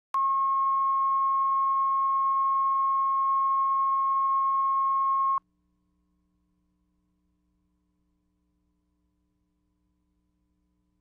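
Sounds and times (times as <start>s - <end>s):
steady test tone beep: 0.2s - 5.4s.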